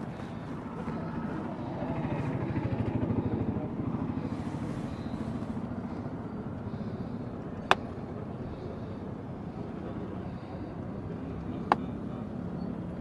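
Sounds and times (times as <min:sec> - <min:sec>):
excavator diesel engine running: 0:00.0 - 0:13.0.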